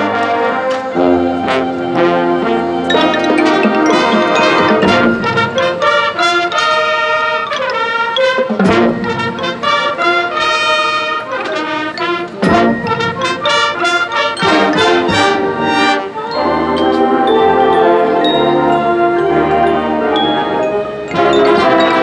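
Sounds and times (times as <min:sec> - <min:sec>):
marching band brass chords: 0:00.0 - 0:22.0
sharp percussion hits: 0:03.0 - 0:06.4, 0:07.5 - 0:10.3.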